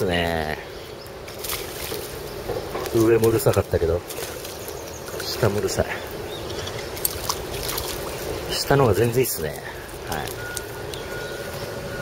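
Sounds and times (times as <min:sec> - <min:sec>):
fish splashing at water surface: 0:01.3 - 0:02.2, 0:06.6 - 0:08.4
water sloshing: 0:01.3 - 0:02.2, 0:03.0 - 0:11.2.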